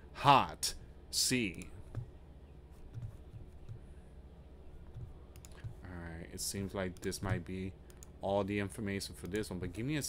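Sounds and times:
soft low thumps: 2.8 - 3.9, 4.9 - 5.9
faint clicks: 4.9 - 5.8, 7.9 - 8.1
person speaking: 5.0 - 10.0.

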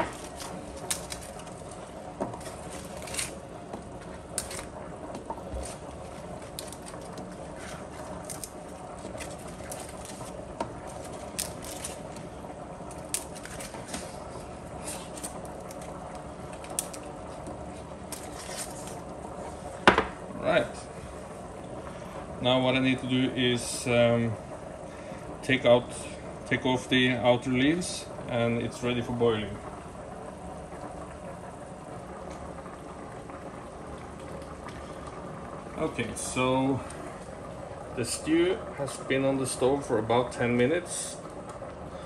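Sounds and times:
sprouts snapping off stalk: 0.0 - 1.5, 6.4 - 12.1, 12.8 - 14.1, 14.8 - 17.1
steady background hum: 0.0 - 42.0.

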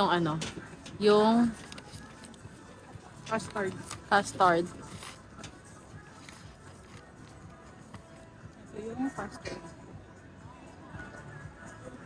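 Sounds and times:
faint music: 0.0 - 12.0.

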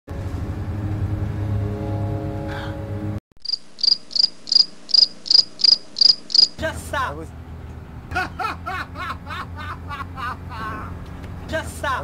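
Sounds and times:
cricket chirps: 3.4 - 6.6.

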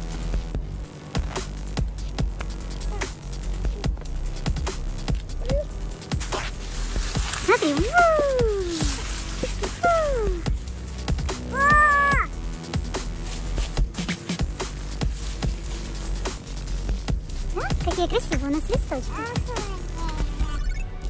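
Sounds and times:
electronic music: 0.0 - 21.0
child squealing: 7.8 - 8.8, 9.7 - 10.4, 11.5 - 12.3.

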